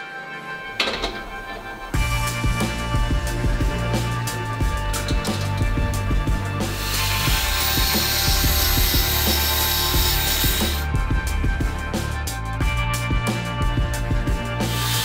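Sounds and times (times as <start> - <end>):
background music: 0.0 - 15.0
jigsaw cutting metal sheet: 6.7 - 10.8, 14.7 - 15.0.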